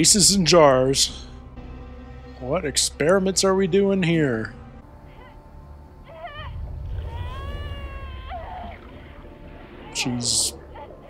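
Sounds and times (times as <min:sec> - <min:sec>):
low droning rumble: 0:01.1 - 0:11.0
high wavering cries: 0:04.8 - 0:11.0.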